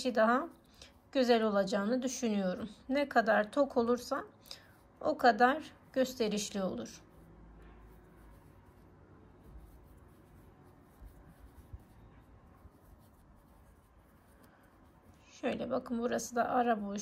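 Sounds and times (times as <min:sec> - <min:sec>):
faint rustling of yarn: 0:00.0 - 0:17.0.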